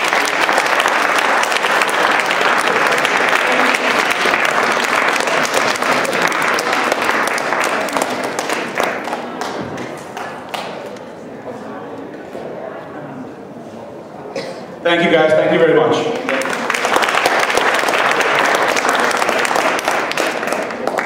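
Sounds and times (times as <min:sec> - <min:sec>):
audience applauding: 0:00.0 - 0:10.9, 0:16.1 - 0:21.0.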